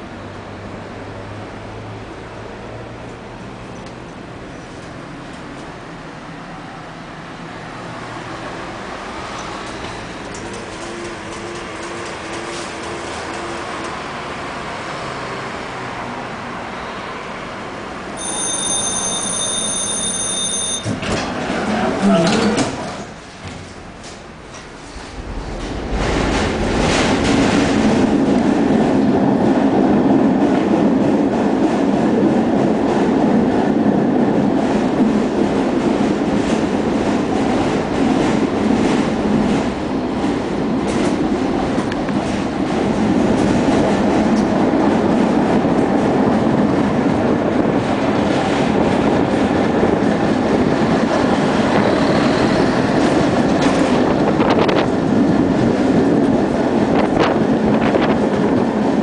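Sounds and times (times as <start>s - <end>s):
tram rumbling on rails: 0.0s - 59.0s.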